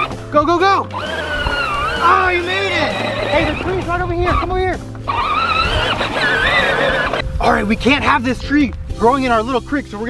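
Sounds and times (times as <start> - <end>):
toy tractor motor whining: 0.8 - 4.5, 5.1 - 7.2.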